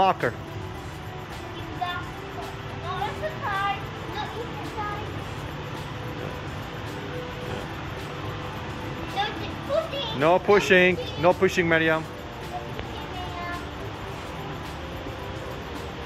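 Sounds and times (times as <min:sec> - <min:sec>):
soft background music: 0:00.0 - 0:16.0
steady low hum: 0:00.0 - 0:16.0.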